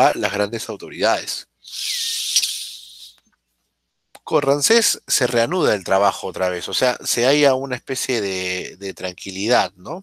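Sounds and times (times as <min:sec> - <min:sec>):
hiss: 0:01.7 - 0:03.1.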